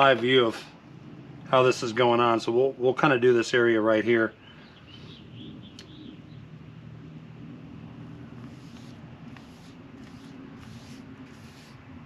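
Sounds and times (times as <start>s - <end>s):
steady low hum: 0.0s - 12.0s
paintbrush swishing strokes: 8.2s - 12.0s.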